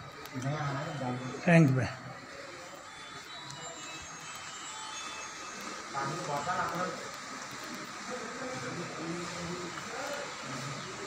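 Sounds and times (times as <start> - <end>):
people talking indistinctly: 0.3 - 11.0
steady hiss: 1.0 - 11.0.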